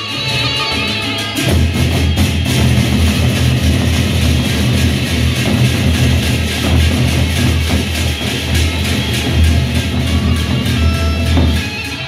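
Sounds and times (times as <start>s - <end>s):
metallic percussion shimmering: 0.0s - 12.0s
barrel drums beaten: 0.8s - 12.0s.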